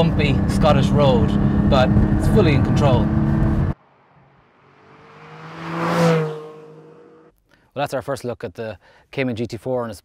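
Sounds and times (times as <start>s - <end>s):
sports car engine approaching: 0.0s - 7.3s.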